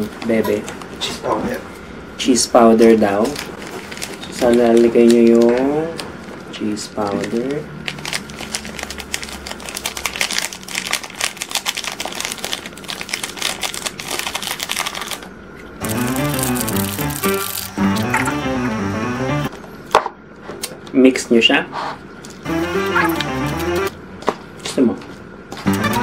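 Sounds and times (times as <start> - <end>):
foil sachet crinkling and tapping: 2.8 - 17.8
background music: 15.8 - 19.5, 22.4 - 23.9, 25.6 - 26.0.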